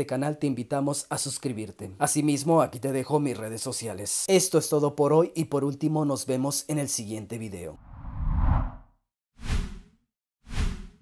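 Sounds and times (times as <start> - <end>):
low whoosh effects: 7.8 - 8.9.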